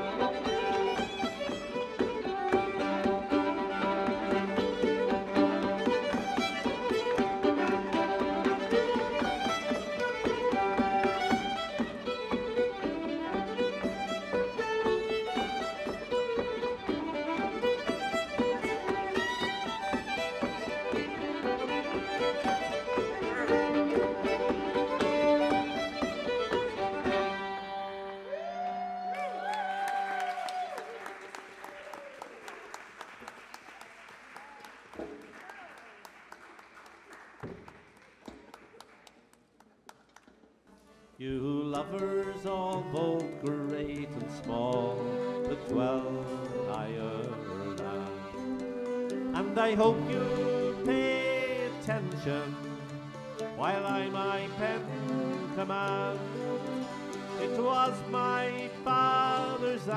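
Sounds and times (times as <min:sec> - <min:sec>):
fiddle dance tune: 0:00.0 - 0:31.0, 0:40.7 - 0:59.9
applause: 0:28.3 - 0:40.4.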